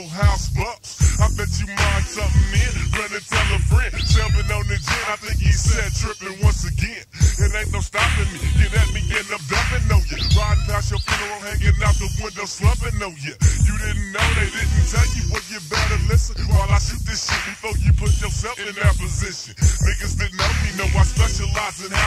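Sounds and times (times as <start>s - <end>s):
rapping over heavy bass: 0.0s - 22.0s
slowed-down hip hop: 0.0s - 22.0s.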